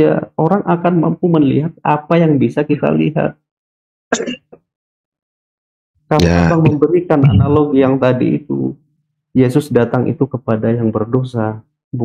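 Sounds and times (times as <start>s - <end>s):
person clearing throat: 4.2s - 4.6s, 6.2s - 7.6s.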